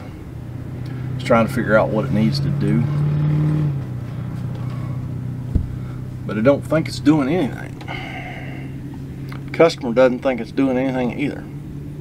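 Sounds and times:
low mechanical hum: 0:03.6 - 0:12.0
low thump: 0:05.5 - 0:05.8.

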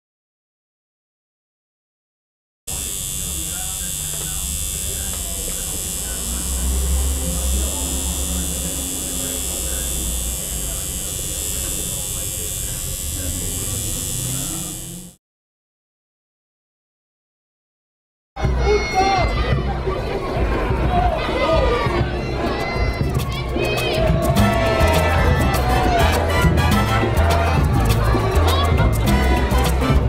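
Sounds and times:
electric buzz: 0:02.7 - 0:15.2
muffled voices: 0:02.7 - 0:15.2.

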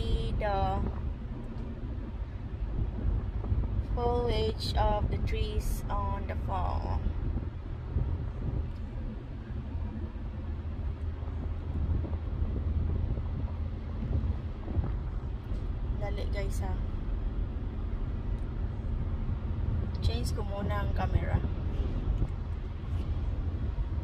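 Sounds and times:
car cabin rumble: 0:00.0 - 0:24.0.

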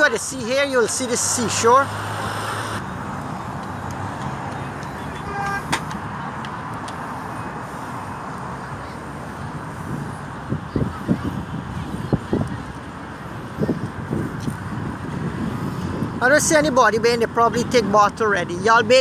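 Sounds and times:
outdoor background noise: 0:00.0 - 0:19.0
wind buffeting microphone: 0:00.0 - 0:19.0.

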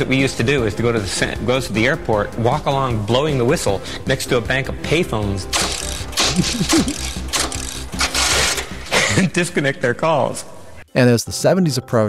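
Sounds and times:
man laughing: 0:06.2 - 0:07.2, 0:08.8 - 0:09.6.

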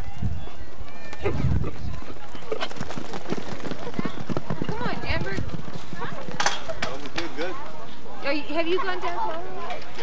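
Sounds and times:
horse hoofbeats on dirt: 0:01.2 - 0:07.7.

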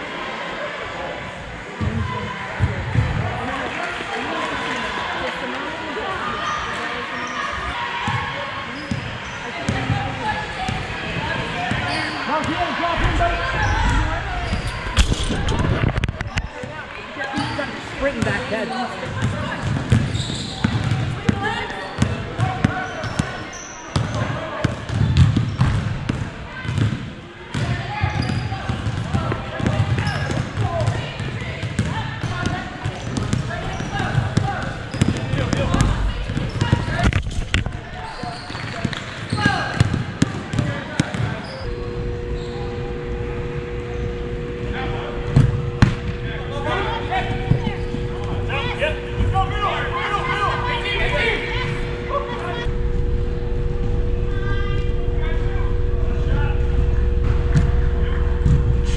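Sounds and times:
players shouting: 0:37.9 - 0:58.9
steady two-note hum: 0:41.6 - 0:58.9.

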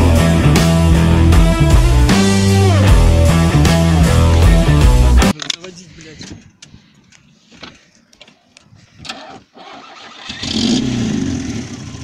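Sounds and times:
car engine starting and idling: 0:09.0 - 0:12.0.

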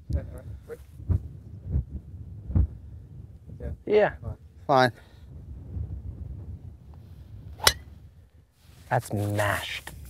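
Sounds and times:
golf club striking ball: 0:07.6 - 0:07.9.

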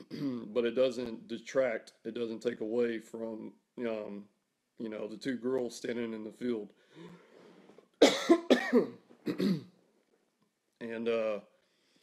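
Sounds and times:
man coughing: 0:00.0 - 0:00.6, 0:08.0 - 0:09.7.

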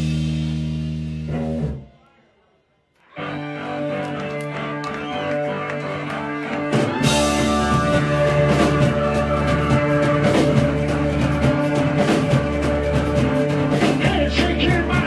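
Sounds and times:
drums and cymbals: 0:00.0 - 0:01.7, 0:06.7 - 0:15.0
bass guitar: 0:00.0 - 0:02.0, 0:03.1 - 0:15.0.

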